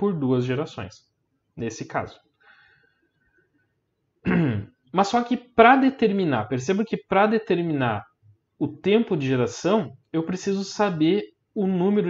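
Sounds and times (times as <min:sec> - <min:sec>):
man clearing his throat: 0:04.2 - 0:04.7.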